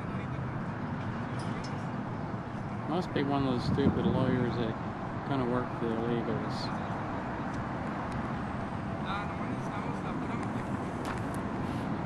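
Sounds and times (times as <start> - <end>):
faint people talking: 0.0 - 12.0
road traffic noise: 0.0 - 12.0.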